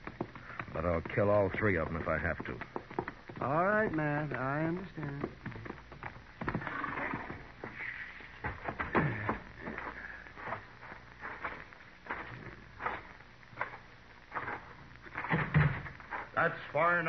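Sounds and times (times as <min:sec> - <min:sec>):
horse hooves clopping: 0:00.0 - 0:16.4.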